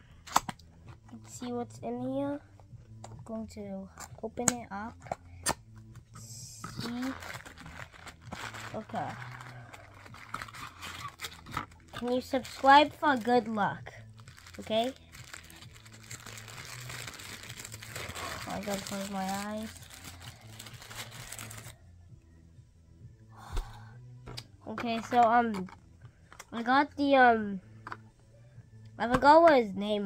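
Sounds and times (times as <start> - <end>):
low steady hum: 0.0 - 30.0
plastic wrapper crinkling: 6.8 - 13.5, 14.1 - 21.8
paper rustling: 14.3 - 21.7.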